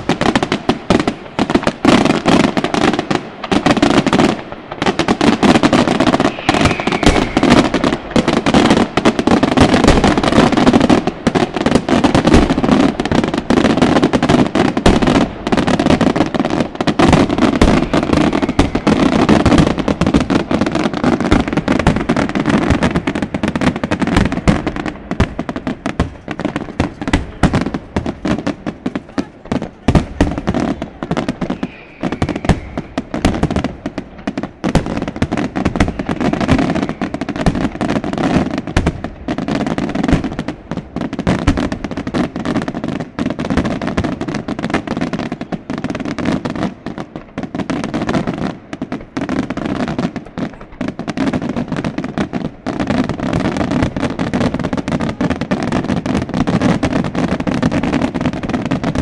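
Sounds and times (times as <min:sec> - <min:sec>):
fireworks bursting and crackling: 0:00.0 - 0:59.0.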